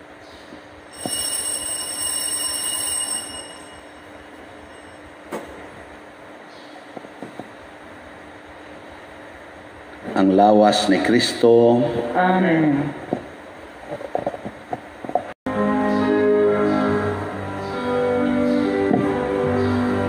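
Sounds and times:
altar bells ringing: 0:00.9 - 0:05.2.

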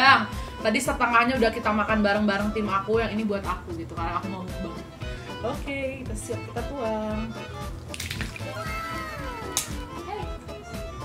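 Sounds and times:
background music with whistle glide: 0:06.4 - 0:11.0
sharp splat: 0:07.9 - 0:08.6
wet slosh of food being poured: 0:07.9 - 0:08.8.

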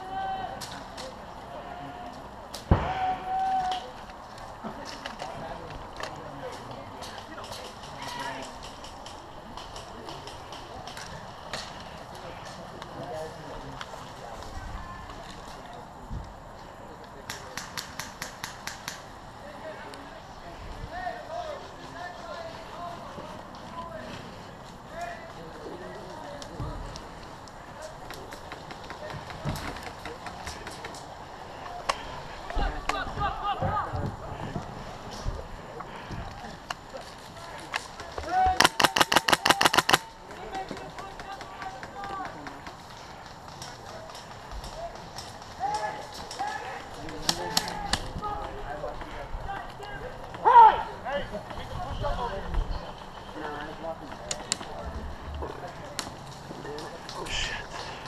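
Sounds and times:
far-off voices: 0:00.0 - 0:58.0
distant airsoft fire pops: 0:38.5 - 0:40.1
airsoft rifle full-auto burst: 0:38.6 - 0:40.1.

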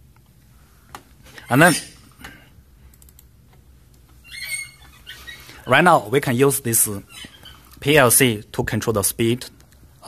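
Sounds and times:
short high squeak: 0:04.2 - 0:05.4.

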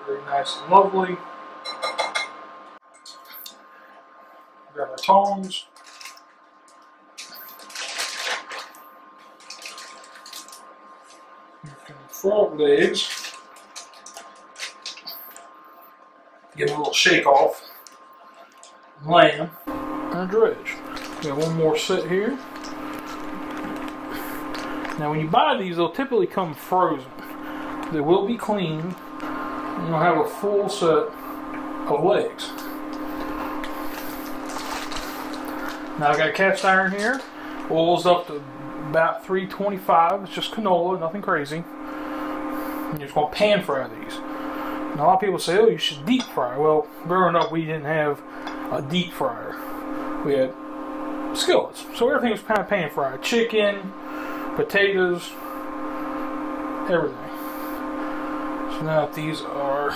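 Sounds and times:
high-pitched fan whine: 0:00.0 - 0:59.9
induction cooktop fan humming: 0:00.0 - 0:59.9
wet sloshing and rustling: 0:07.2 - 0:11.3.

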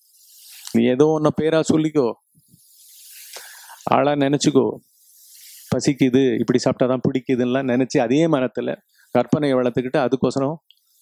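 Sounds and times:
man speaking: 0:00.8 - 0:02.2, 0:05.7 - 0:10.6
man breathing in: 0:02.6 - 0:03.8, 0:05.0 - 0:05.7.

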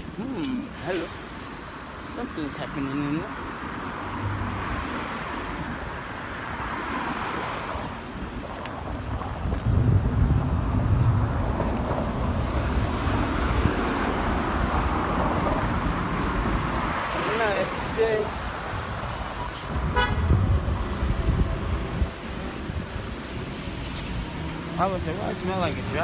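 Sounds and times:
traffic rumble: 0:00.0 - 0:26.0
wind buffeting microphone: 0:04.1 - 0:26.0.

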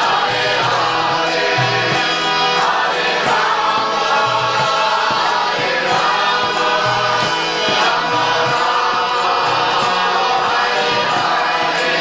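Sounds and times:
drum strokes: 0:00.0 - 0:12.0
group of voices chanting: 0:00.0 - 0:12.0.

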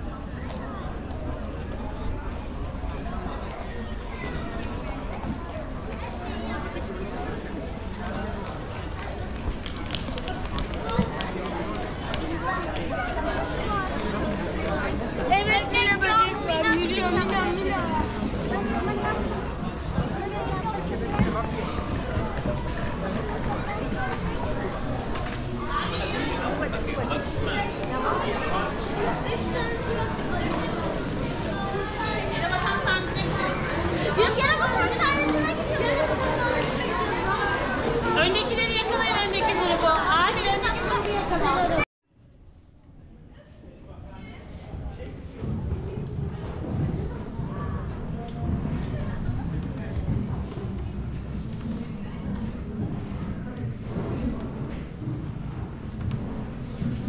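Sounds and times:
children chattering and calling out: 0:00.0 - 0:41.9
crowd talking: 0:00.0 - 0:41.9, 0:42.6 - 0:57.0.

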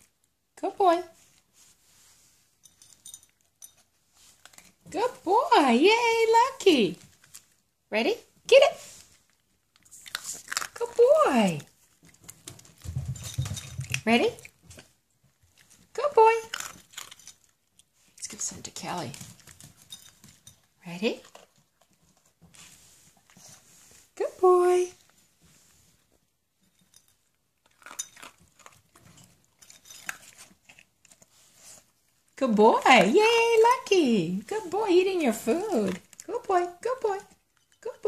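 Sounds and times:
dog crunching dry kibble: 0:03.2 - 0:05.3, 0:06.4 - 0:07.7, 0:08.8 - 0:23.6, 0:26.6 - 0:38.0
puppy chewing food: 0:09.0 - 0:18.4, 0:19.1 - 0:23.7, 0:27.2 - 0:33.1, 0:34.6 - 0:37.8.

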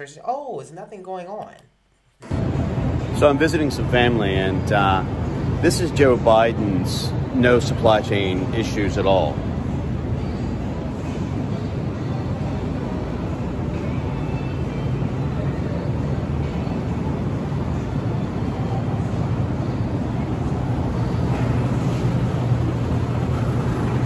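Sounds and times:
refrigerated display cases humming: 0:01.7 - 0:24.0
ventilation rumble: 0:01.8 - 0:24.0.

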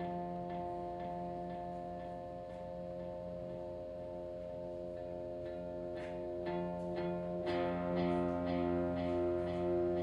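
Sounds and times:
plucked electric guitar notes: 0:00.0 - 0:10.0
steady sustained drone: 0:00.0 - 0:10.0.

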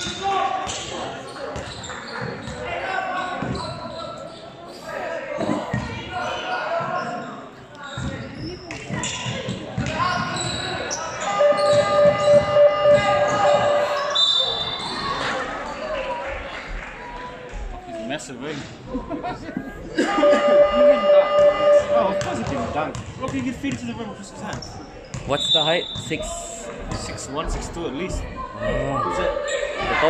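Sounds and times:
echoing voices in sports hall: 0:00.0 - 0:30.0.

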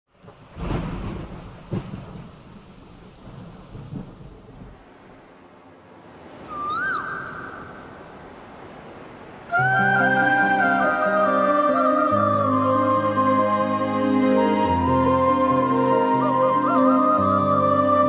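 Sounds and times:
steady rain: 0:00.1 - 0:18.0
thunder rumbling: 0:00.2 - 0:05.3
flute sliding into held note: 0:09.5 - 0:18.0.

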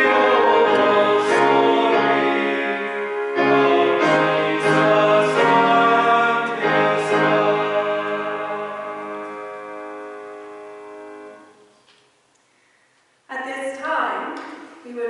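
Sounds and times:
hymn singing: 0:00.0 - 0:11.6
piano: 0:00.0 - 0:11.9.

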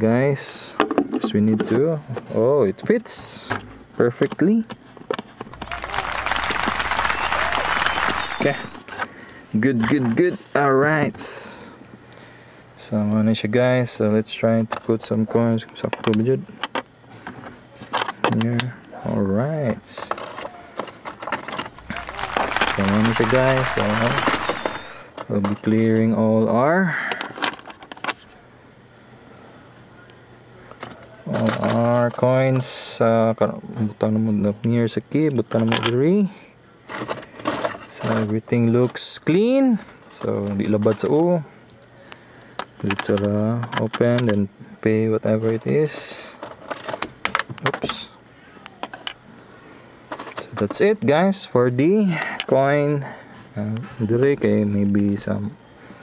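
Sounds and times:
coins clinking against plastic: 0:21.0 - 0:25.0
plastic crackling rustle: 0:21.7 - 0:25.0.

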